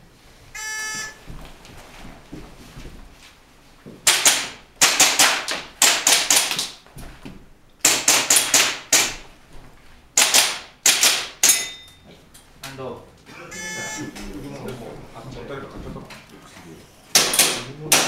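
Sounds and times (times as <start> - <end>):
airsoft pistol firing: 4.1 - 6.6, 10.2 - 11.6.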